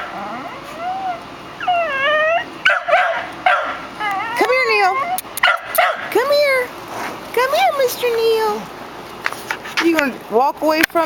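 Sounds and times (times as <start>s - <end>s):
dog whining and yipping: 0.0s - 5.5s.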